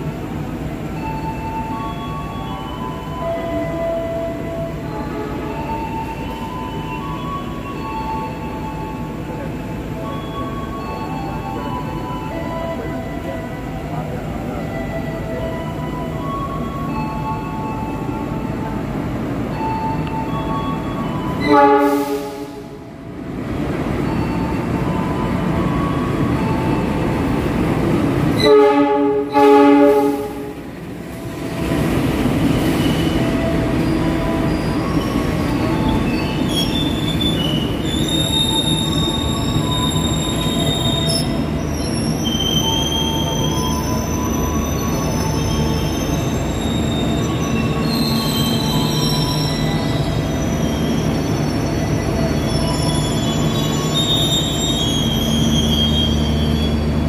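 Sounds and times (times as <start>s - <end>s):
train rumbling: 0.0s - 57.0s
train horn blasts: 21.4s - 22.9s, 28.4s - 30.6s
wheel and brake squealing: 32.5s - 57.0s.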